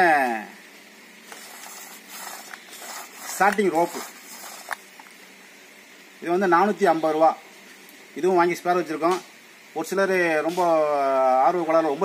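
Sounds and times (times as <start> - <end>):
pulley clicking: 1.3 - 4.8
starter rope being pulled: 1.3 - 4.9.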